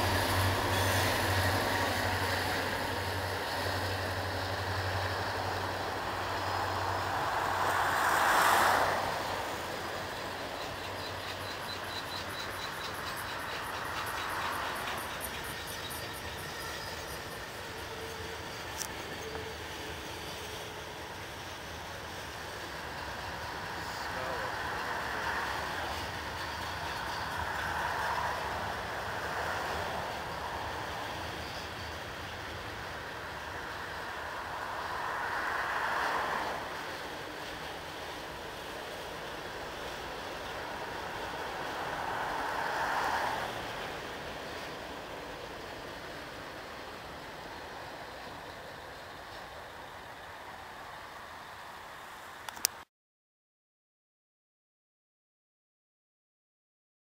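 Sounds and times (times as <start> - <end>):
freight train rumbling on bridge: 0.0 - 52.5
cars passing with tyre noise: 0.0 - 52.9.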